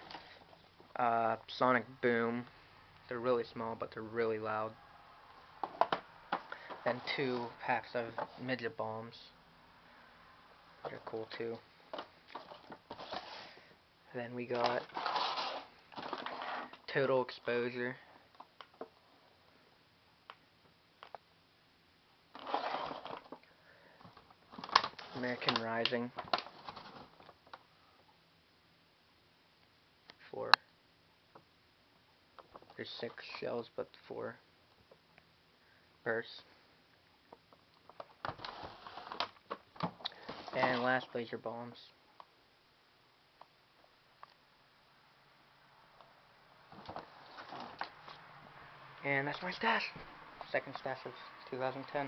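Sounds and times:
cardboard box rustling and scraping: 12.4 - 13.6, 14.6 - 16.8, 22.4 - 23.3, 38.4 - 39.3, 40.2 - 40.9, 46.8 - 47.9
packaging clicks and rustles: 14.5 - 16.9, 22.4 - 27.7, 37.5 - 41.0.

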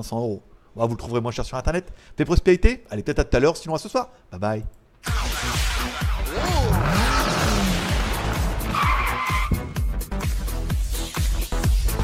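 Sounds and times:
electronic music with beat: 5.0 - 12.0.

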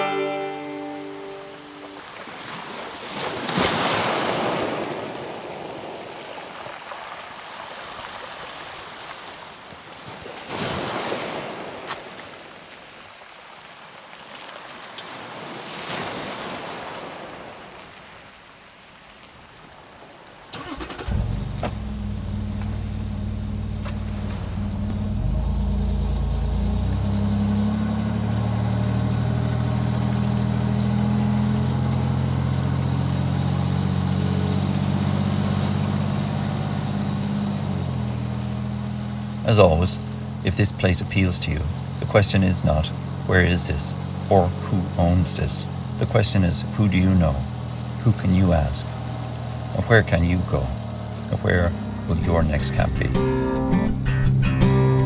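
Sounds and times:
waves washing on shore: 0.7 - 21.1, 26.7 - 53.2
diesel engine starting and running: 20.5 - 55.0.

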